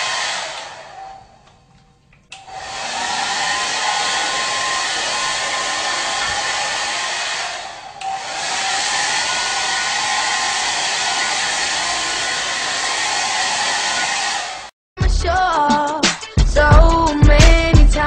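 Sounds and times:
hair dryer blowing: 0.0 - 1.2, 2.3 - 14.7.

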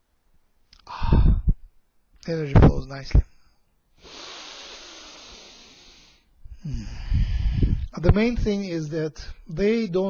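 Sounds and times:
person exhaling breathily: 0.8 - 1.5, 4.0 - 7.9.

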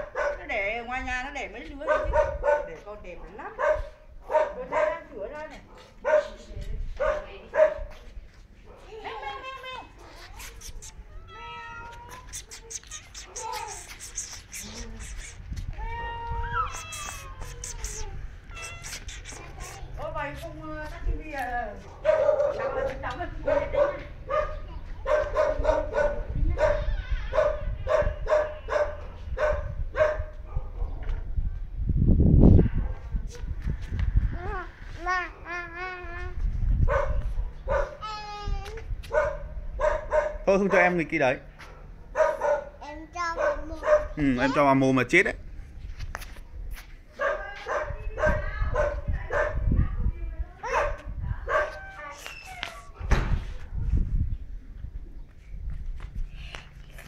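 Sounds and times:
dog barking: 0.0 - 0.5, 1.8 - 6.4, 7.0 - 8.0, 8.7 - 9.0, 21.8 - 31.1, 32.6 - 33.6, 36.8 - 38.0, 39.1 - 41.0, 41.6 - 44.2, 47.2 - 49.8, 50.6 - 52.0
small dog yapping: 10.0 - 20.0, 36.9 - 38.2, 43.4 - 44.6, 50.6 - 53.1.

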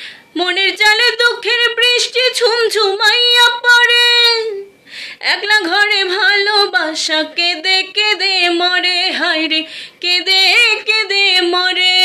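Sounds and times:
woman singing unaccompanied: 0.0 - 12.0.

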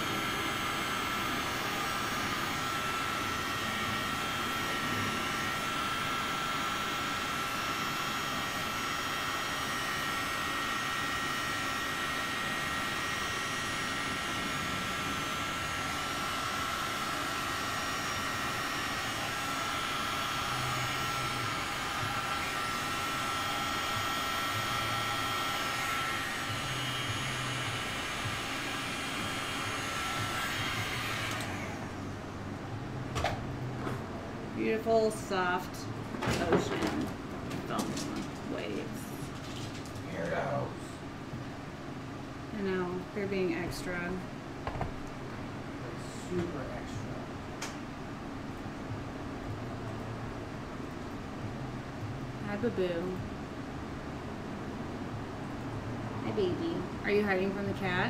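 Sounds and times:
heat gun blowing and whining: 0.0 - 32.5.

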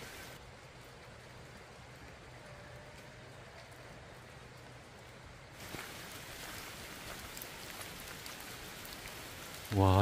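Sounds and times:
light rain falling: 0.0 - 10.0.

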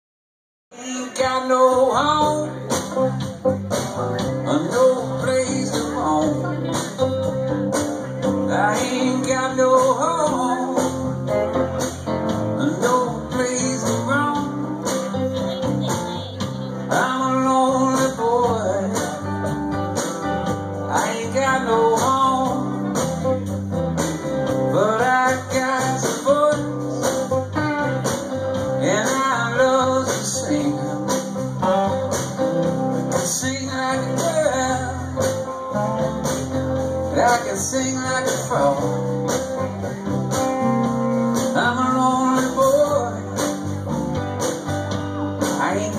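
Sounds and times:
blues country band playing: 0.8 - 45.9.

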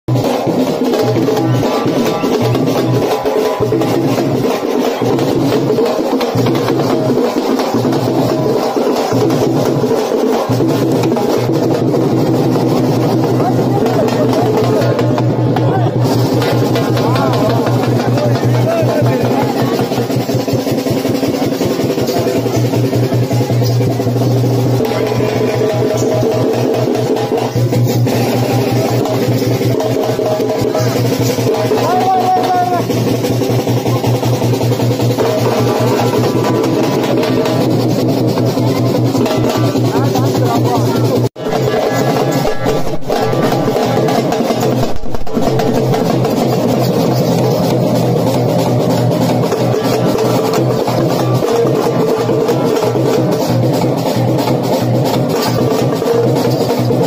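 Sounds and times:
folk drum ensemble: 0.0 - 57.0.

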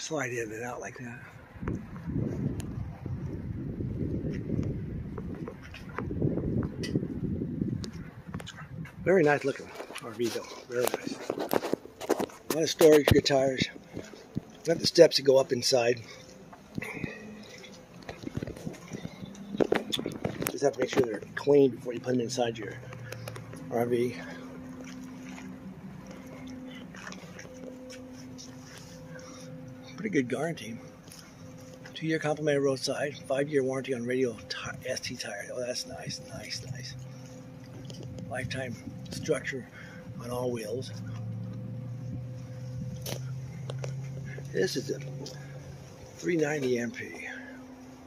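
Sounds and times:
low hum: 0.0 - 48.0
wind buffeting microphone: 1.6 - 10.0, 17.9 - 23.6
faint rustles: 7.7 - 30.1.

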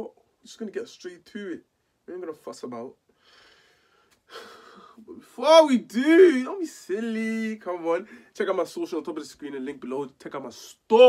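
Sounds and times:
man breathing in: 3.1 - 5.0.

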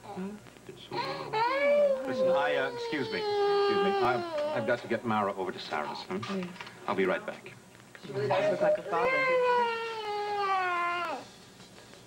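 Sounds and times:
toddler whining cry: 1.0 - 4.9, 8.9 - 11.3.

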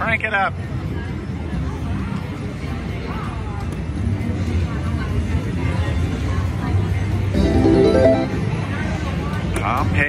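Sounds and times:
slot machine reel sounds: 7.3 - 8.5
short tune of pitched tones: 7.4 - 8.5.

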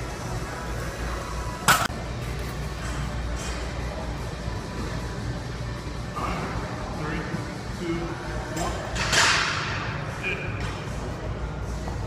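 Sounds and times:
gym background noise: 0.0 - 12.0.

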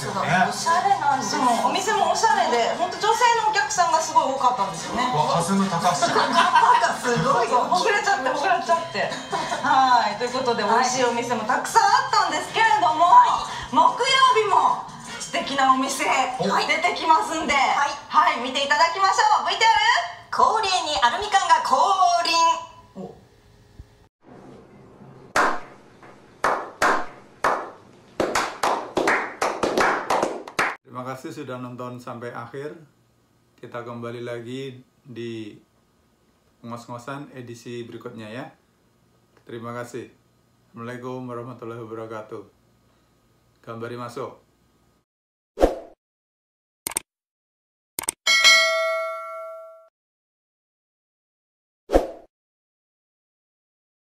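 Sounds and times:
group slow-clapping: 25.3 - 25.7, 26.4 - 30.8
bright bell chime: 48.3 - 49.9.

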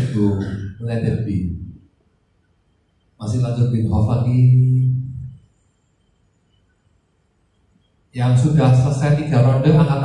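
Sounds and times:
man speaking into a microphone: 0.0 - 1.7, 3.2 - 5.3, 8.2 - 10.0.

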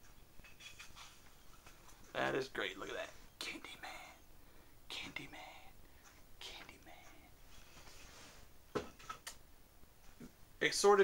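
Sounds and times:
man whispering: 2.1 - 4.3, 4.9 - 7.4.

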